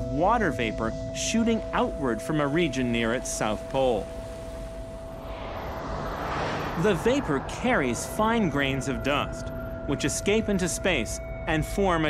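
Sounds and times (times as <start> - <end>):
steady held music tone: 0.0 - 12.0
soft rushing whoosh: 3.6 - 9.6.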